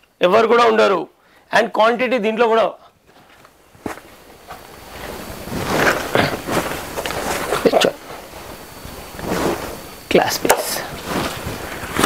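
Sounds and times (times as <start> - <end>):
low room noise: 0.0 - 12.0
footsteps on hard floor: 3.1 - 7.6.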